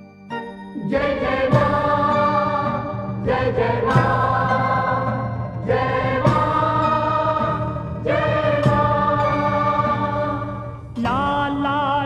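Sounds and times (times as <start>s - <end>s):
chorus singing long held notes: 0.7s - 11.5s
steady low drone: 0.9s - 11.1s.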